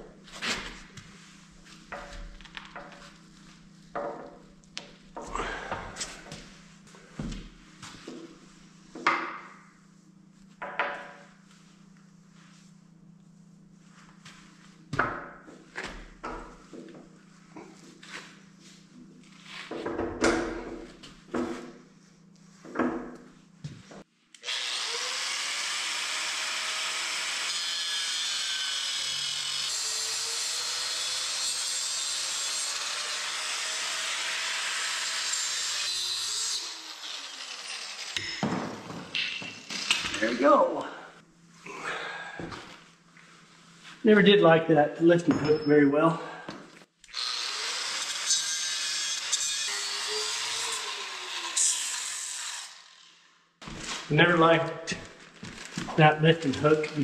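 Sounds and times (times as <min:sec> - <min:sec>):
angle grinder grinding steel: 0:24.4 - 0:38.4, 0:47.0 - 0:53.3.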